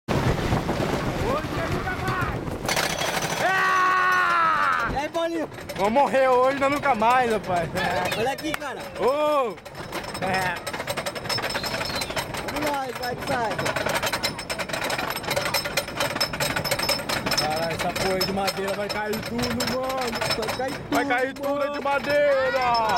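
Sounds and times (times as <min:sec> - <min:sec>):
roller coaster chain lift clattering: 0:01.4 - 0:22.9
person yelling: 0:03.4 - 0:05.0.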